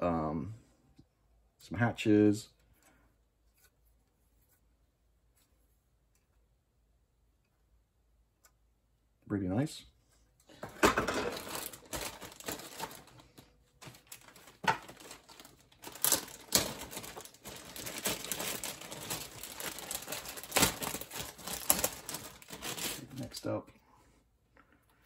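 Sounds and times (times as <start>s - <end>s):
plastic parts clicking and knocking: 10.5s - 22.3s
plastic bags crinkling: 10.7s - 23.5s.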